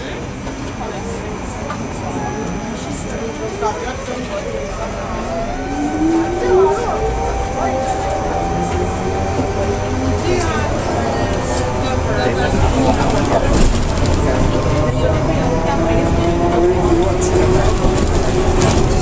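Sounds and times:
passengers' voices: 0:00.0 - 0:19.0
bus cabin rumble: 0:05.8 - 0:19.0.

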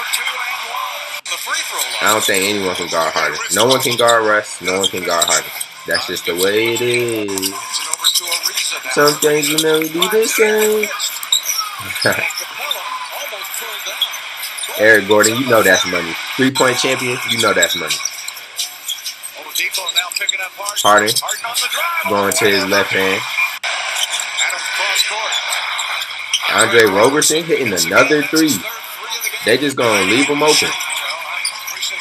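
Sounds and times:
arena crowd noise: 0:00.0 - 0:32.0
commentator talking: 0:01.3 - 0:18.1, 0:19.4 - 0:23.3, 0:26.4 - 0:32.0
arena crowd murmur: 0:21.0 - 0:32.0.

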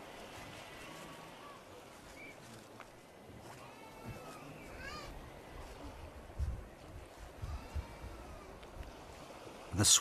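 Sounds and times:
faint animal calls: 0:03.4 - 0:06.0.

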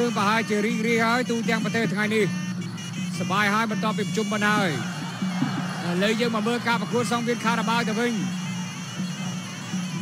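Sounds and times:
reed pipe wavering melody: 0:00.0 - 0:10.0.

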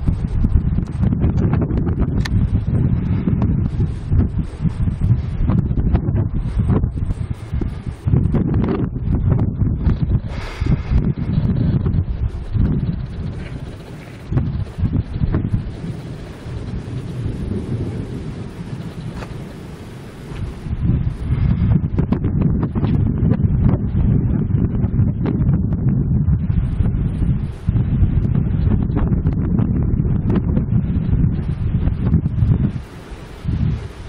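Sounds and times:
gusty wind buffeting microphone: 0:00.0 - 0:34.0.

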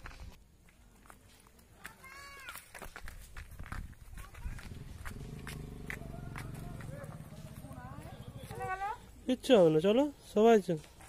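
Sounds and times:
footsteps on wooden slats: 0:00.7 - 0:07.8
voices: 0:04.1 - 0:11.0.

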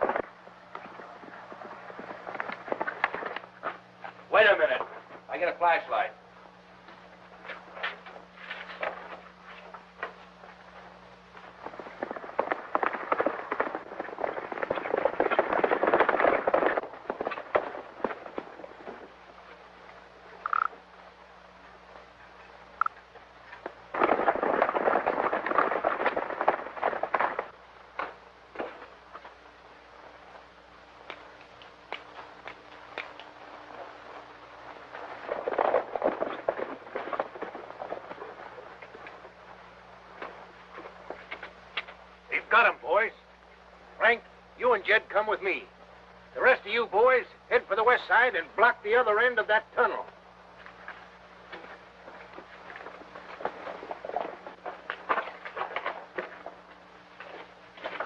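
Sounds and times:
horses galloping hoofbeats: 0:00.0 - 0:05.9, 0:06.8 - 0:58.0
low film soundtrack hum: 0:00.0 - 0:58.0.

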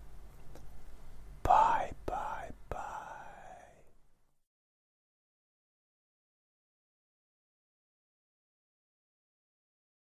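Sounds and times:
man whispering: 0:01.4 - 0:04.0.

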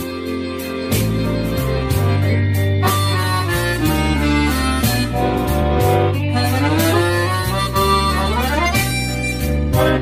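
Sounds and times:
button accordion blues tune: 0:00.0 - 0:10.0.

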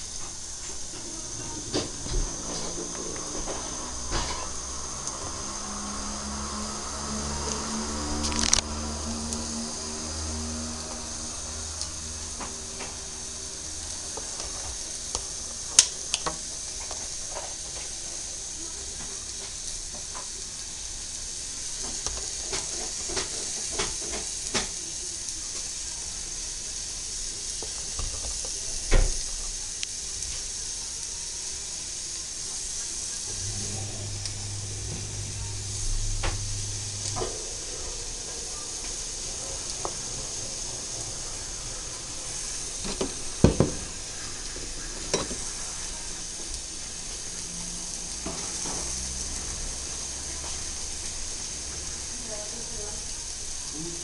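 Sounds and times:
steady background hiss: 0:00.0 - 0:54.0.

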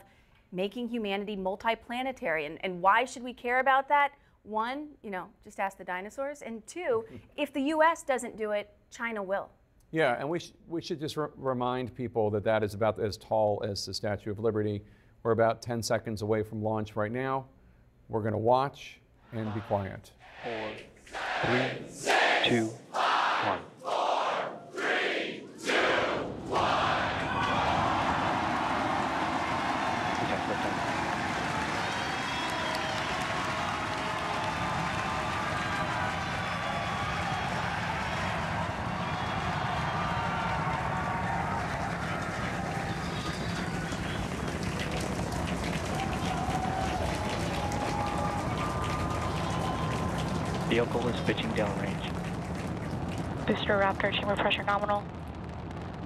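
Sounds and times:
crowd cheering and shouting: 0:21.1 - 0:54.7
rocket engines roaring: 0:25.5 - 0:47.0, 0:48.2 - 0:56.0.

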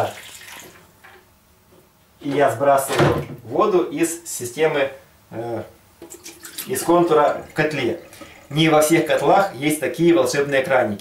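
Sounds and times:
water running into a ladle: 0:00.0 - 0:00.8, 0:06.0 - 0:09.6.

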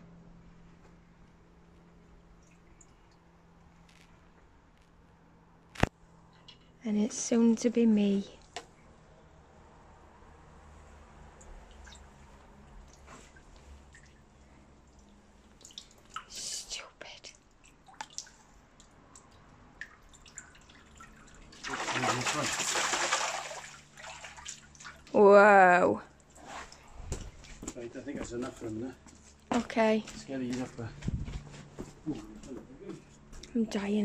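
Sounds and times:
water dripping and splashing: 0:02.3 - 0:03.3, 0:11.2 - 0:16.6, 0:17.4 - 0:25.2
loud rush of splashing water: 0:21.6 - 0:24.5.

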